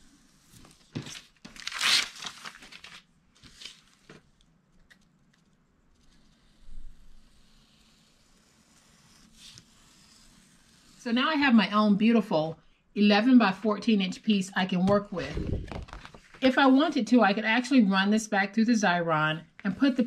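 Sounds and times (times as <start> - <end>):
paper scraping and tearing: 0.9 - 3.9.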